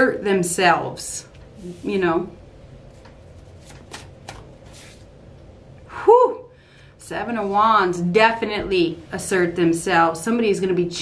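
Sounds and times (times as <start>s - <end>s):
cards flicking and snapping: 3.6s - 5.0s.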